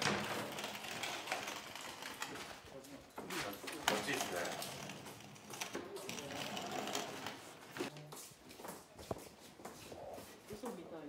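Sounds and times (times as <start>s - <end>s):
sliding door rattling on track: 0.0s - 2.5s.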